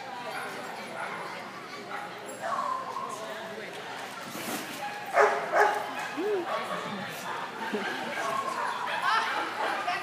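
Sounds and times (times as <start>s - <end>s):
dog barking: 5.1s - 6.2s.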